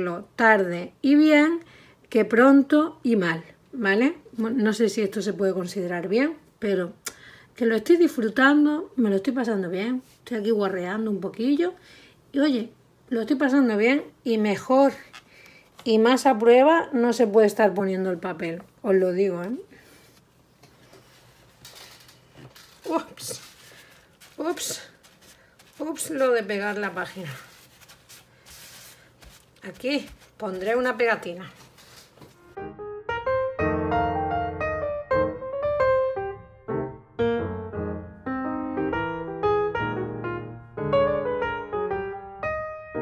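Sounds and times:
paper pages rustling: 0:14.9 - 0:16.5, 0:19.4 - 0:32.6
piano music: 0:32.3 - 0:43.0.

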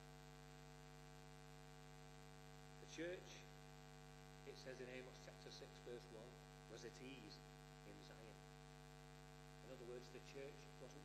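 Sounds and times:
electrical mains hum: 0:00.0 - 0:11.0
man speaking: 0:02.8 - 0:03.5, 0:04.5 - 0:08.4, 0:09.6 - 0:11.0.

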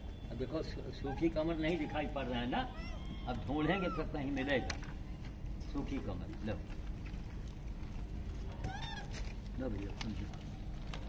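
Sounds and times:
monkey squealing call: 0:02.6 - 0:04.7, 0:08.6 - 0:09.1.

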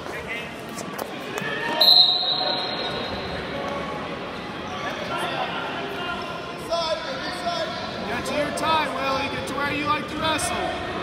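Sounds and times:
spectators chattering: 0:00.0 - 0:11.0
referee's whistle: 0:01.8 - 0:03.1.

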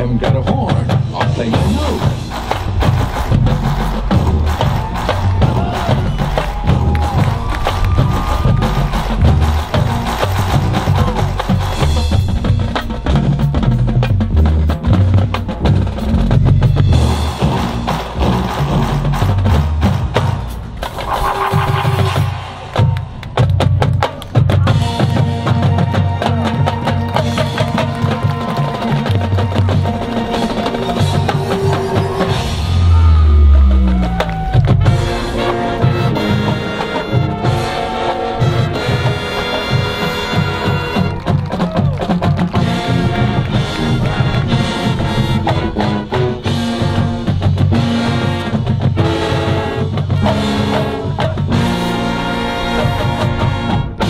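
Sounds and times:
pitched parts over drums: 0:00.0 - 0:25.7, 0:27.3 - 0:49.2
marching band percussion: 0:00.0 - 0:54.0.

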